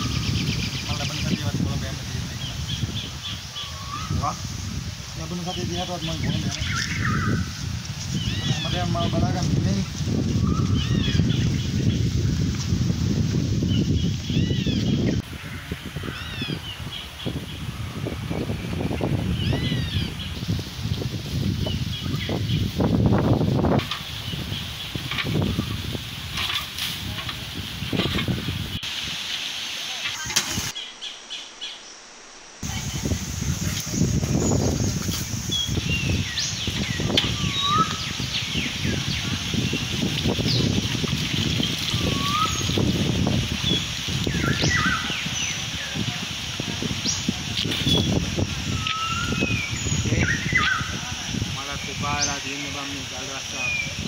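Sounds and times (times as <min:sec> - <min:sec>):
bird chirps: 0:34.3 - 0:40.7, 0:41.6 - 0:43.0, 0:47.1 - 0:51.0.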